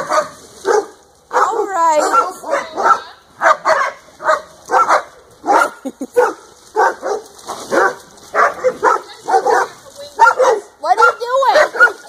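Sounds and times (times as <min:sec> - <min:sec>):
dog barking: 0:00.0 - 0:12.0.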